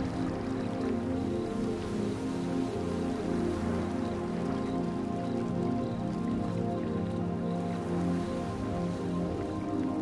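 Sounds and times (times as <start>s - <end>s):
ambient synth pad music: 0.0s - 10.0s.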